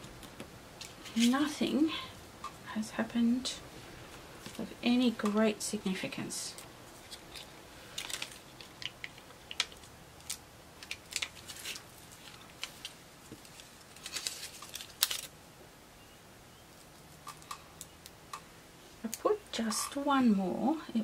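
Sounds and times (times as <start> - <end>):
hands handling paper stickers: 6.5 - 15.3.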